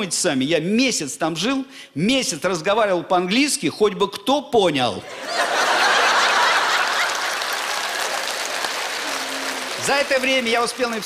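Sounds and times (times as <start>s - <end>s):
audience laughing: 5.0s - 10.1s
audience applauding: 5.3s - 11.0s.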